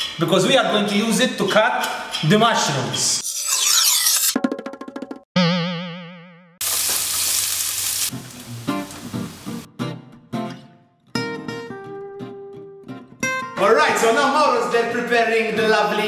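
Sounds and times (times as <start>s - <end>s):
wobbling cartoon boing: 5.4s - 6.6s
onions sizzling: 6.6s - 9.7s.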